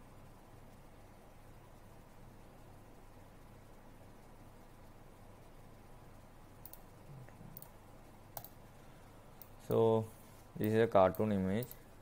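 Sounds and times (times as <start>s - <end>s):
room hiss: 0.0s - 12.0s
faint mouse clicks: 6.6s - 8.6s, 9.4s - 9.6s, 10.6s - 11.8s.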